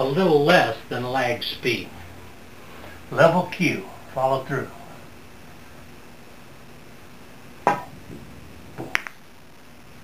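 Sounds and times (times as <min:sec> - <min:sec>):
low room hum: 0:00.0 - 0:10.0
ball knocking off cushion: 0:07.6 - 0:09.1.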